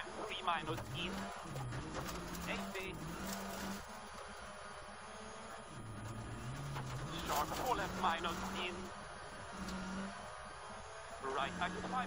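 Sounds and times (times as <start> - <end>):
rally car engine revving: 0.0 - 12.0.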